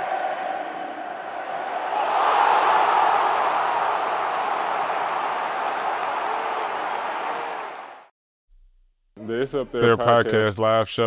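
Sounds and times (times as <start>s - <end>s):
audience applauding: 1.9s - 8.1s.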